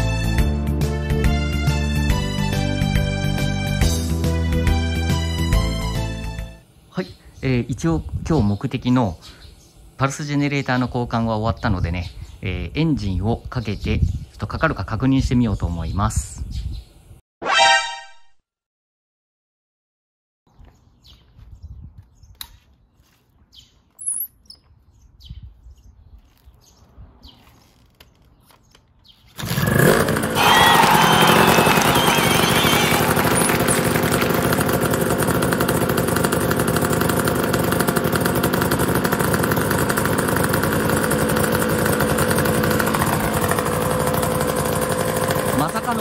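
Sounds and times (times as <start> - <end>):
two-stroke engine starting and running: 29.4 - 46.0.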